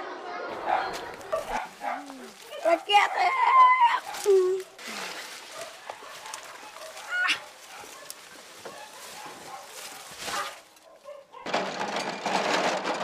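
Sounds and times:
farmyard birds calling: 0.7 - 11.4
metal wheelbarrow rattling on asphalt: 6.6 - 13.0.

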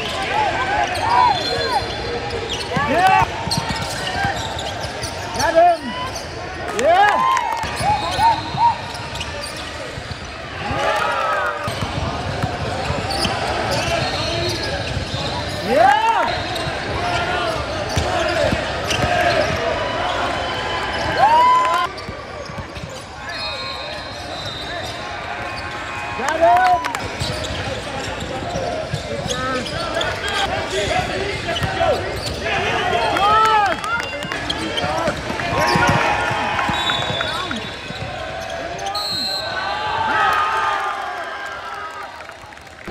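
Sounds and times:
sneakers squeaking: 0.0 - 6.6, 7.6 - 26.3, 26.9 - 40.0
players calling out: 0.0 - 41.8
basketball bouncing: 11.6 - 13.3.

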